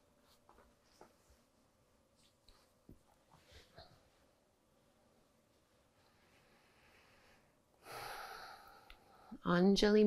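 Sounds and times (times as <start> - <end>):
woman's deep breath: 6.2 - 9.4.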